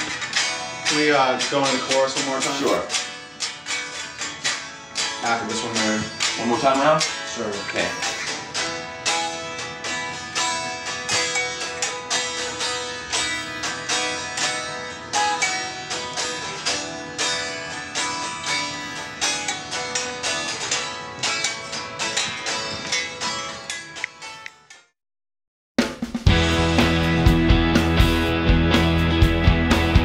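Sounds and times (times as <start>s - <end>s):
electric guitars strumming chords: 0.0s - 24.5s, 26.3s - 30.0s.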